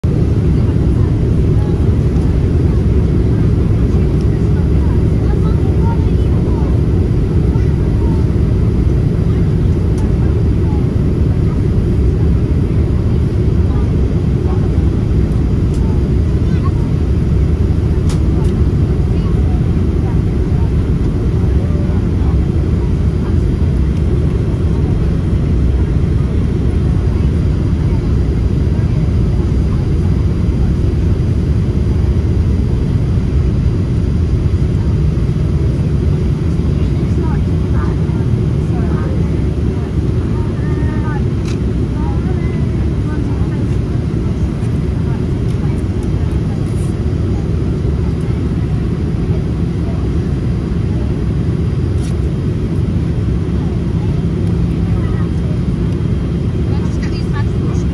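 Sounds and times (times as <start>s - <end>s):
airplane cabin noise: 0.0s - 57.9s.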